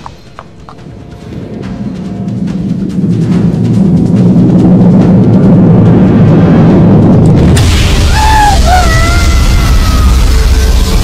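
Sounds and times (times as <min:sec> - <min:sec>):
background music: 0:00.0 - 0:11.0
low rumble: 0:00.8 - 0:11.0.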